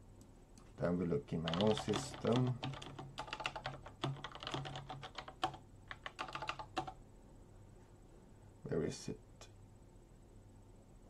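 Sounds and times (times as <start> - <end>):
computer keyboard typing: 1.4 - 7.0.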